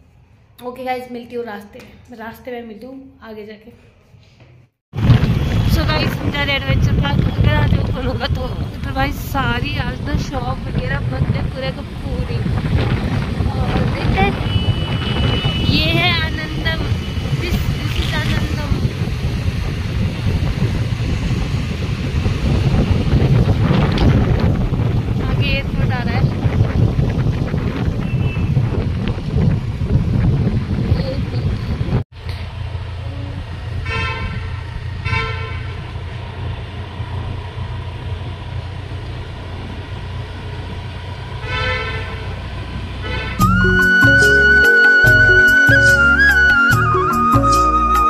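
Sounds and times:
road traffic noise: 4.1s - 48.0s
vehicle horns tooting: 14.1s - 18.4s, 33.8s - 35.9s, 41.4s - 42.4s, 43.0s - 43.6s
music: 43.4s - 48.0s.

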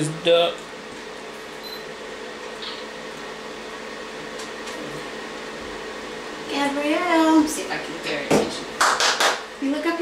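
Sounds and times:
fan-like whir: 0.0s - 10.0s.

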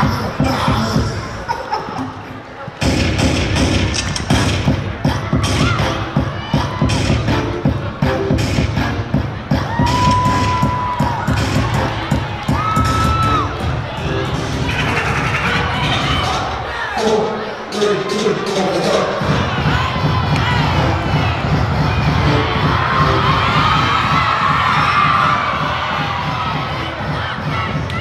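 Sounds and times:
crowd cheering and shouting: 0.0s - 28.0s
loud dance music with heavy beat: 0.0s - 28.0s.

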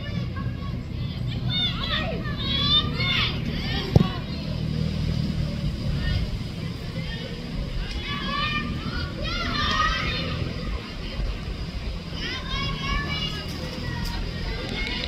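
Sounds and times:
young players calling out: 0.0s - 4.6s, 5.8s - 15.0s.

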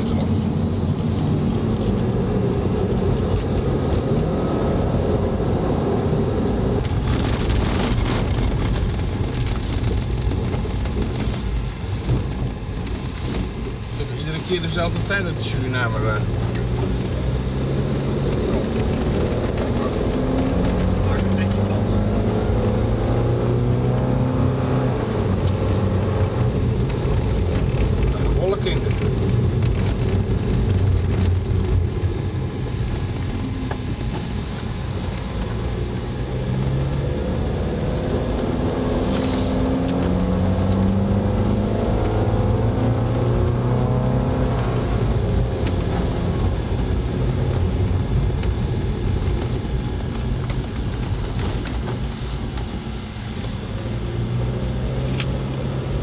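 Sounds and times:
van engine from inside cabin: 0.0s - 56.0s.

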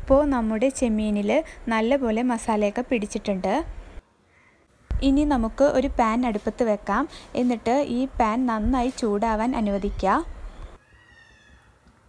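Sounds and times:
woman speaking: 0.0s - 3.7s, 5.0s - 10.3s
small animal high-pitched cry: 10.8s - 11.7s.

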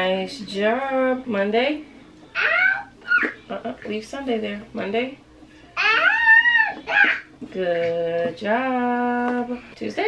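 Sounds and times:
toddler squealing: 2.4s - 3.4s, 5.8s - 7.3s.

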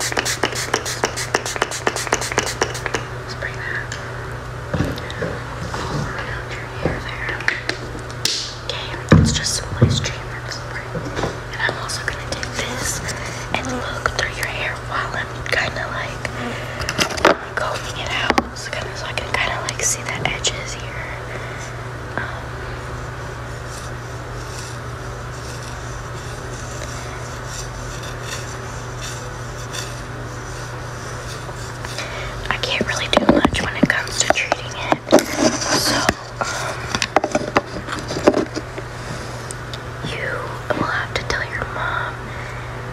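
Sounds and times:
steady low hum: 0.0s - 42.9s
person whispering: 2.5s - 4.0s, 5.8s - 7.7s, 8.7s - 10.9s, 11.5s - 16.6s, 17.5s - 22.6s, 31.3s - 36.7s, 40.0s - 42.3s.

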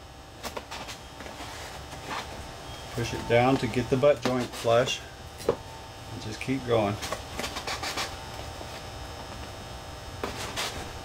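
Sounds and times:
steady electrical hum: 0.0s - 11.0s
hands scraping tape on foam: 7.0s - 8.8s, 10.2s - 10.9s.

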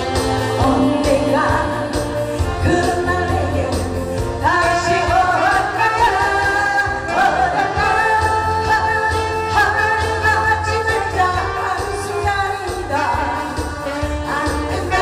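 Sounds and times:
pop accompaniment with steady beat: 0.0s - 15.0s
woman singing into microphone: 0.4s - 15.0s.

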